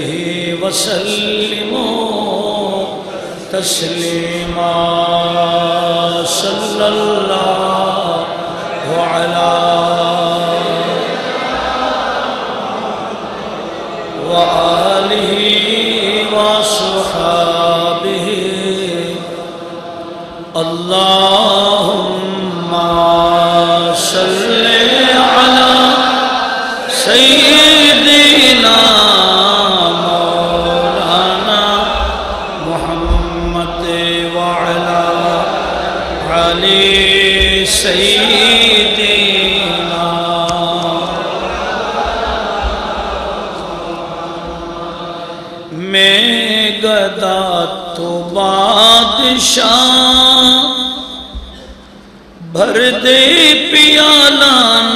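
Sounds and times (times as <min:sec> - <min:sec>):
man chanting in long held notes: 0:00.0 - 0:12.4, 0:13.1 - 0:51.8, 0:52.4 - 0:54.9.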